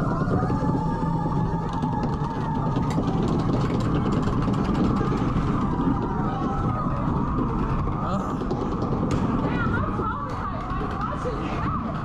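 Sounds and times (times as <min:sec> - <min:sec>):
ride vehicle running noise: 0:00.0 - 0:12.0.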